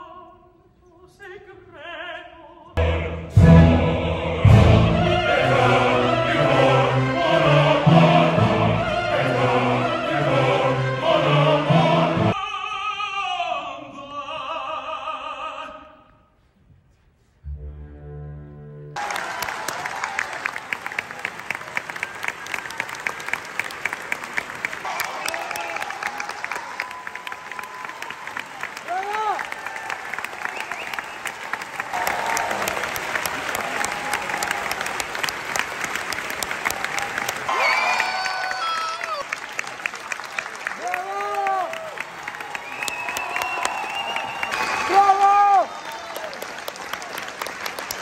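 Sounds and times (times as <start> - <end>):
audience clapping: 19.0 - 48.0.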